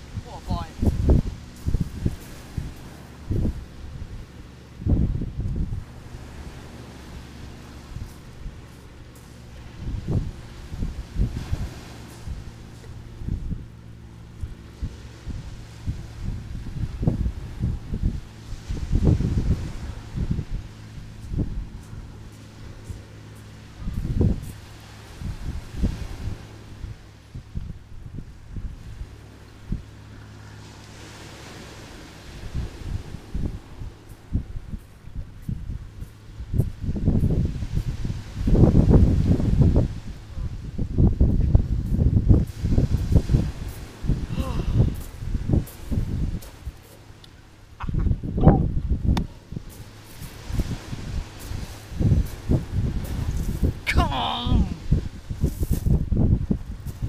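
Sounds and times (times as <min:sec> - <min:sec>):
steady low hum: 0:00.0 - 0:57.0
wind buffeting microphone: 0:00.0 - 0:57.0.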